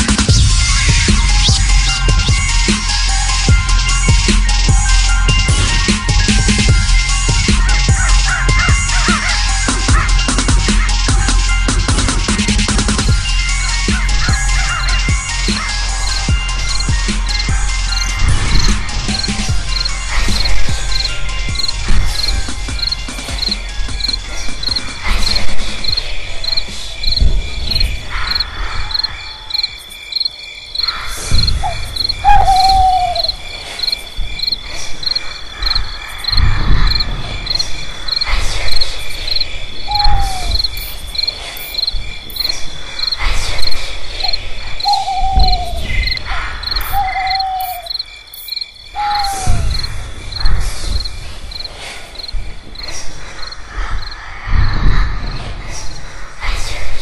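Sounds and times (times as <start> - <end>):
deep rumble: 0.0 - 29.0, 31.2 - 47.6, 49.0 - 57.0
crickets chirping: 0.0 - 57.0
falling hoot-like calls: 4.7 - 12.4, 13.5 - 48.1, 48.8 - 50.5.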